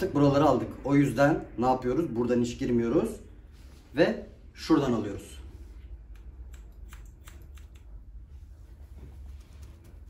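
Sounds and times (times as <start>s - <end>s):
low steady hum: 0.0s - 10.0s
scissors snipping hair: 6.0s - 8.2s.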